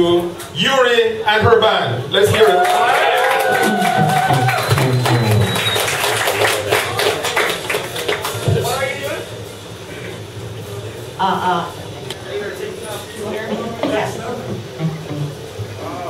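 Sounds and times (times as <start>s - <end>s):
audience applauding: 2.3s - 8.9s
voices calling out: 2.4s - 5.9s.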